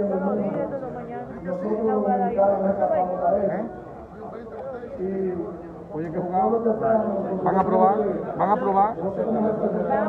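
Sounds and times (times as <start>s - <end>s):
several people talking: 0.0s - 10.0s.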